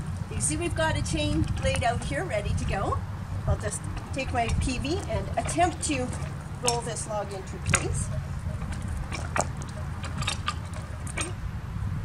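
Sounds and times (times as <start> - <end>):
log rolling over gravel: 0.0 - 11.4
steady low rumble: 0.0 - 12.0.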